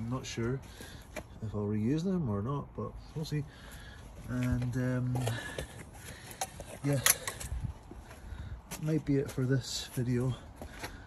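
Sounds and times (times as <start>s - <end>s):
man speaking: 4.2s - 5.5s, 8.7s - 10.5s.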